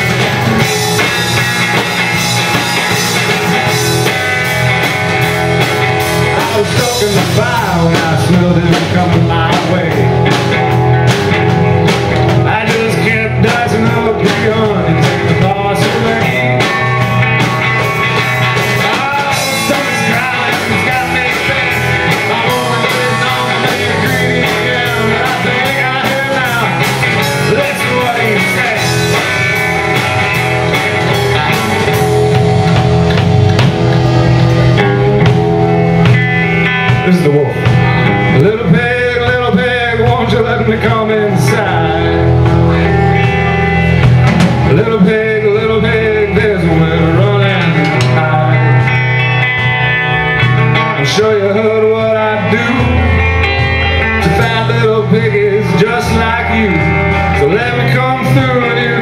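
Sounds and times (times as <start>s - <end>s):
bass guitar: 0.0s - 59.0s
drum kit: 0.0s - 59.0s
electric guitar: 0.0s - 59.0s
man singing: 6.2s - 10.6s, 12.2s - 32.0s, 36.8s - 43.6s, 44.6s - 49.0s, 50.5s - 59.0s.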